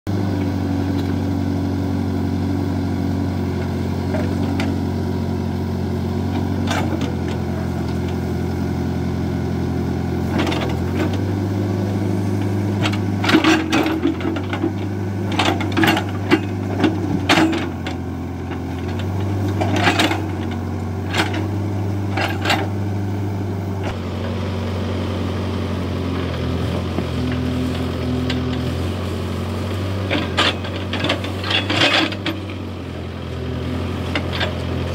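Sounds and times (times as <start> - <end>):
diesel engine running: 0.1 - 34.9.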